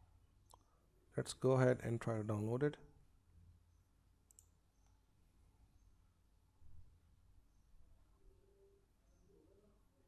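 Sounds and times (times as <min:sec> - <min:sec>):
computer mouse click: 0:04.2 - 0:04.9.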